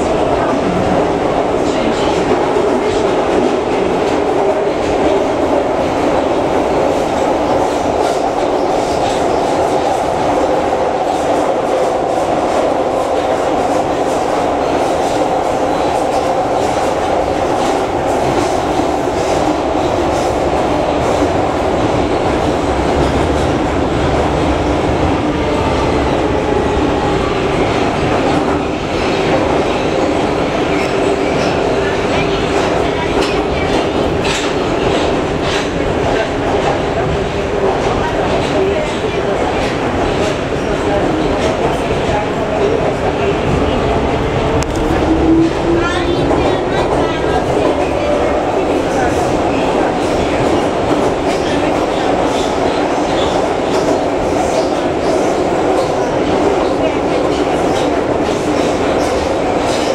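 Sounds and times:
metro train running in tunnel: 0:00.0 - 0:59.9.

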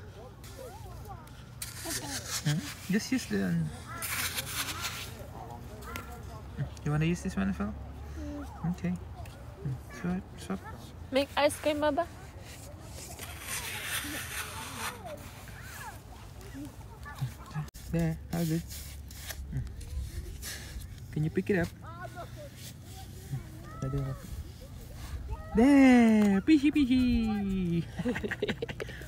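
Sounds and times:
toy shovel digging in sand: 0:00.4 - 0:06.1, 0:11.4 - 0:16.1, 0:17.0 - 0:26.6
faint voices: 0:19.1 - 0:28.8.

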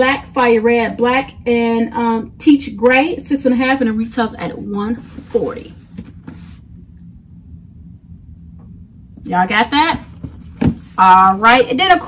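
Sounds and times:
low background rumble and hum: 0:00.0 - 0:12.0
soft rustle: 0:04.9 - 0:06.7.

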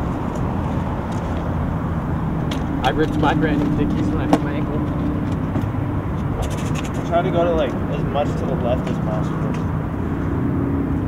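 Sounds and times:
low outdoor rumble: 0:00.0 - 0:11.0
man's voice: 0:02.8 - 0:04.9.

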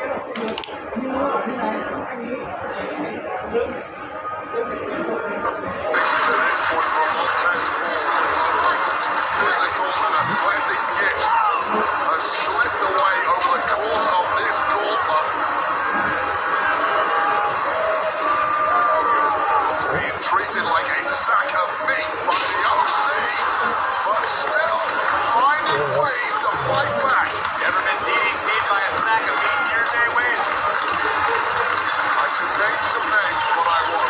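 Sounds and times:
steady background noise: 0:00.0 - 0:34.0
indistinct voices: 0:24.3 - 0:28.0.

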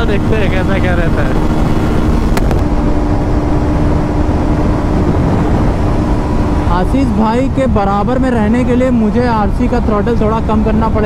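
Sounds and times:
man talking: 0:00.0 - 0:01.4, 0:06.7 - 0:11.0
motorcycle engine steady tone: 0:00.0 - 0:11.0
wind rush over microphone: 0:00.0 - 0:11.0.

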